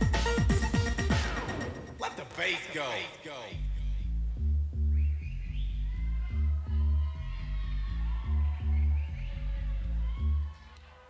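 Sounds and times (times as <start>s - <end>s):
techno music: 0.0s - 4.7s.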